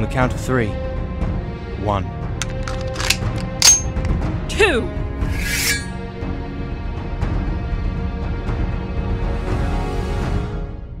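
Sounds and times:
background music: 0:00.0 - 0:11.0
sharp metallic clicks: 0:02.4 - 0:04.2
ringing metallic clang: 0:03.1 - 0:04.1.

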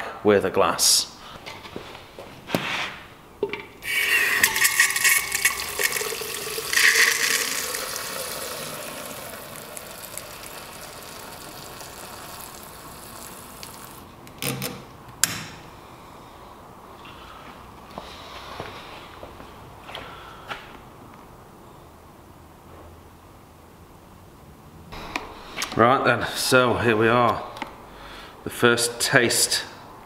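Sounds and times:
beer pouring into a jug: 0:03.8 - 0:14.1.

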